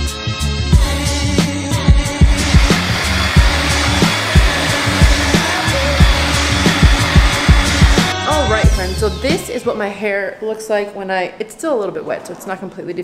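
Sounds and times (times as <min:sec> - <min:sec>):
background music with beat: 0:00.0 - 0:09.5
hair dryer blowing: 0:01.8 - 0:09.4.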